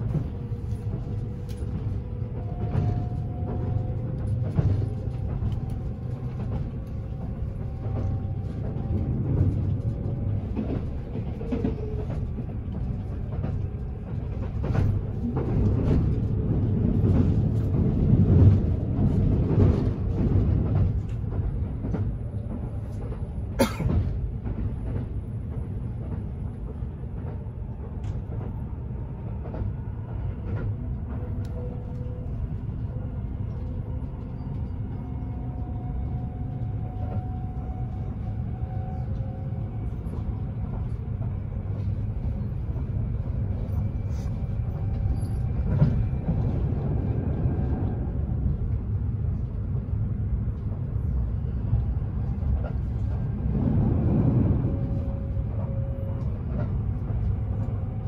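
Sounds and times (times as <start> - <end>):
train cabin low rumble: 0.0 - 58.0.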